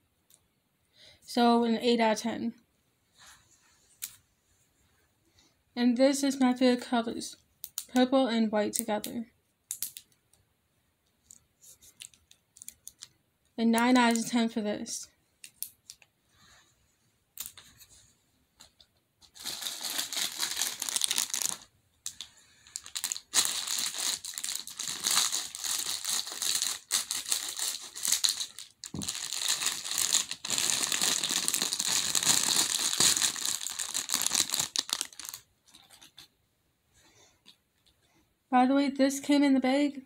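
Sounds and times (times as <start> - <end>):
plastic bag crinkling: 19.3 - 36.1.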